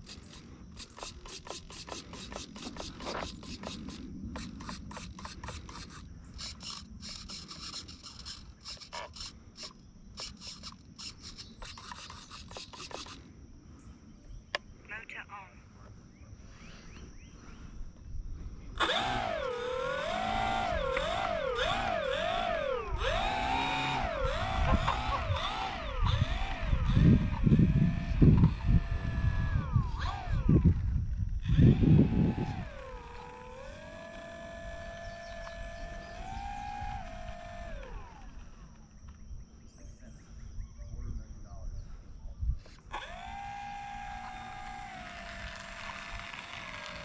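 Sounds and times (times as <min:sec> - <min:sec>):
electric motor and propeller whining: 0:00.0 - 0:14.2, 0:16.0 - 0:40.4, 0:42.6 - 0:47.0
wind rumbling on microphone: 0:17.0 - 0:46.8.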